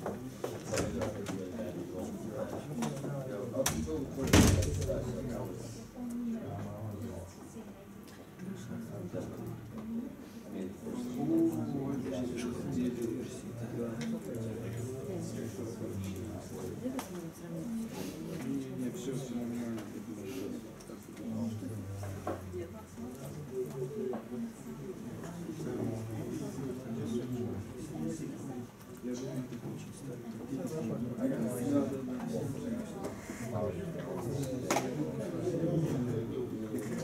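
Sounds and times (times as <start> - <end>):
low background voices: 0.0 - 37.0.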